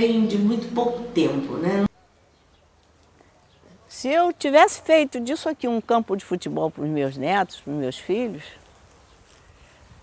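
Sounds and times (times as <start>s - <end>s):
woman speaking: 0.0s - 1.9s, 3.9s - 8.6s.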